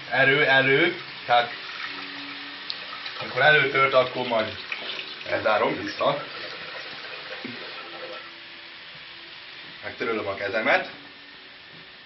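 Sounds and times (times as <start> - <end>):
dumplings sizzling in oil: 0.0 - 12.0.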